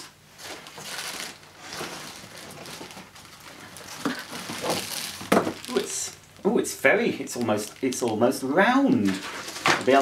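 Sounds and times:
cardboard scraping: 0:00.4 - 0:05.9
plastic bag crinkling: 0:00.4 - 0:10.0.

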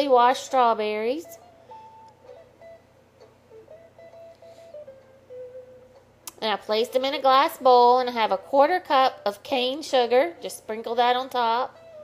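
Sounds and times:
faint slow melody: 0:00.0 - 0:12.0.

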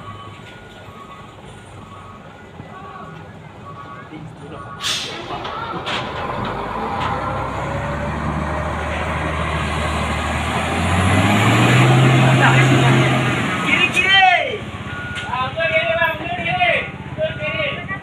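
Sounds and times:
diesel truck engine labouring: 0:00.0 - 0:18.0.

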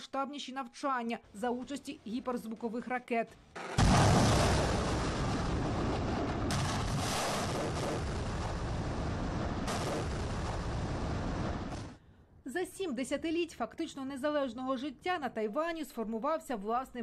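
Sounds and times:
rocket ignition blast: 0:03.6 - 0:12.0.

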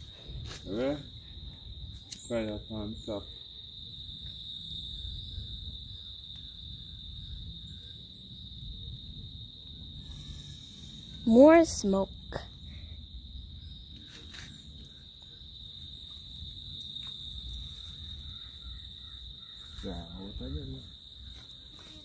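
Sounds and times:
crickets trilling: 0:00.0 - 0:22.0.

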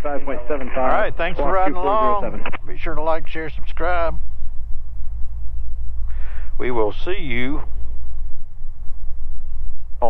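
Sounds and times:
airplane piston engines droning: 0:00.0 - 0:10.0.

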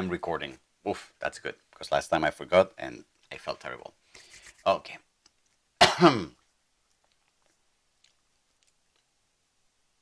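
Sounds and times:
man clearing his throat: 0:05.8 - 0:06.4.

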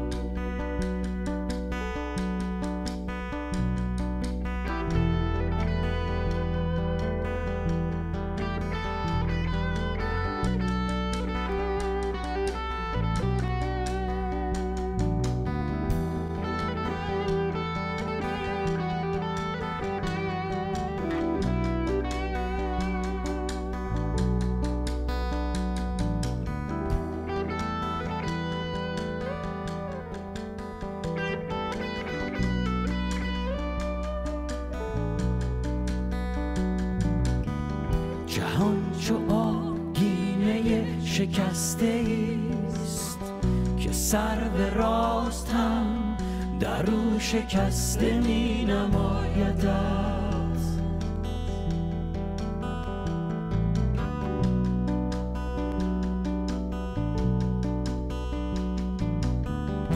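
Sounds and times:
bass notes: 0:00.0 - 0:59.9
drums: 0:00.0 - 0:59.9
electric guitar picked: 0:00.0 - 0:59.9.

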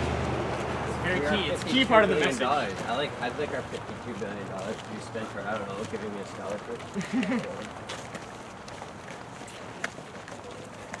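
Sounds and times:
footsteps and shuffling: 0:00.0 - 0:11.0.

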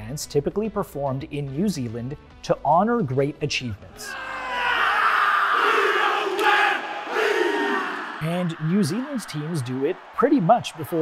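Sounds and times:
team shouting in unison: 0:03.9 - 0:10.1
loud stadium crowd: 0:04.1 - 0:11.0.

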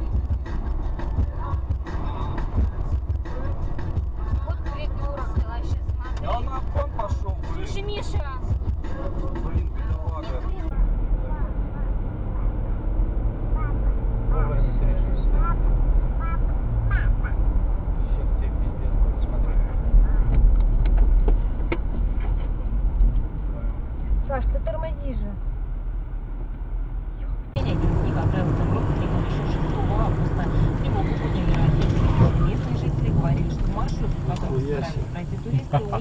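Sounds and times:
road and engine rumble in car: 0:00.0 - 0:36.0.

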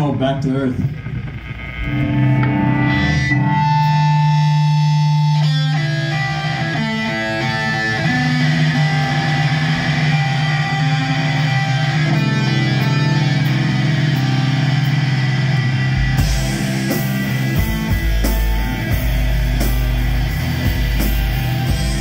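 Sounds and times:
electric guitars ringing: 0:00.0 - 0:22.0
low sustained bass: 0:07.7 - 0:22.0.

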